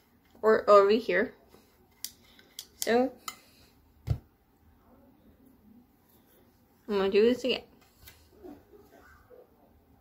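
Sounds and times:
woman speaking: 0.4 - 1.4, 2.8 - 3.2, 6.8 - 7.8.

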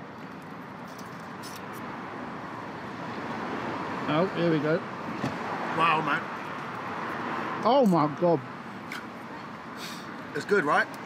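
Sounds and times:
passing vehicles: 0.0 - 11.0.

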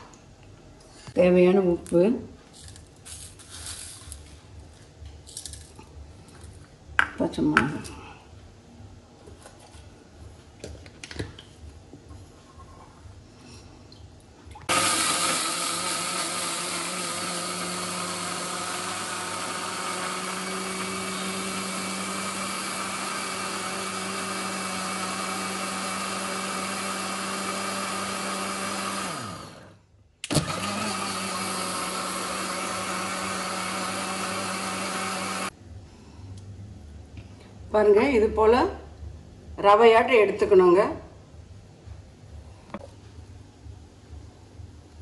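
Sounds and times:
mixer grinder running: 14.7 - 35.5.

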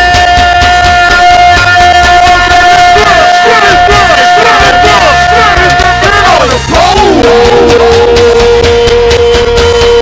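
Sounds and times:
steady drumming: 0.0 - 10.0
long held note: 7.2 - 10.0.

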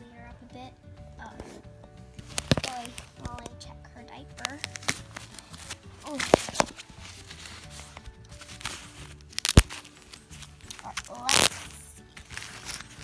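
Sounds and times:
soft background music: 0.0 - 13.0
diaper tabs clicking and rustling: 2.2 - 3.6, 4.4 - 13.0.

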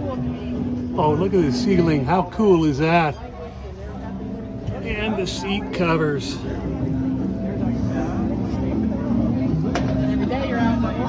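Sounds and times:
steady low drone: 3.6 - 11.0.

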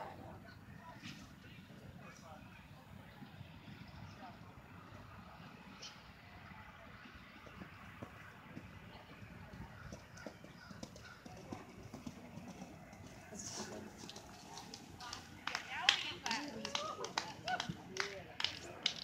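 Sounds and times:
low background voices: 0.0 - 19.0.

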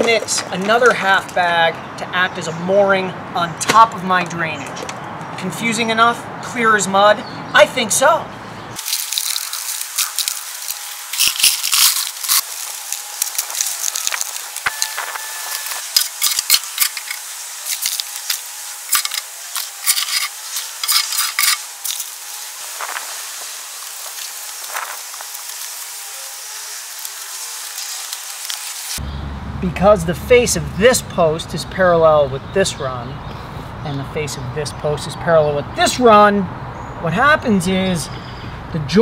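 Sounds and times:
gravel poured into a hole: 8.8 - 19.2
shovel scraping gravel: 8.8 - 29.0.

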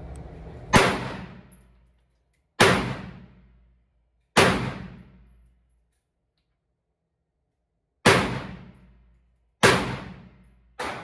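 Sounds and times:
gunshots echoing indoors: 0.7 - 1.8, 2.6 - 5.6, 8.0 - 11.0.

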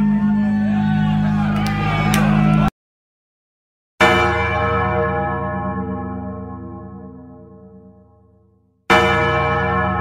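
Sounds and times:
large bell tolling: 4.0 - 10.0.

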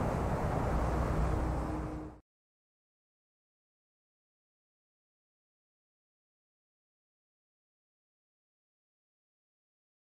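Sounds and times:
steady low rumble: 0.0 - 2.2.

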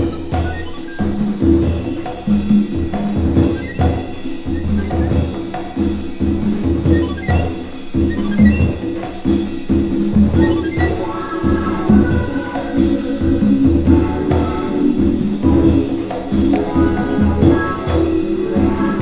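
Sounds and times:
drum kit: 0.0 - 19.0
hand percussion: 0.0 - 19.0.

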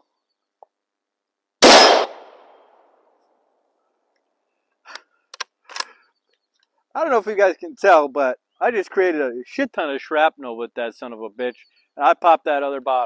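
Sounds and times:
rifle shot with echo: 1.6 - 2.5.

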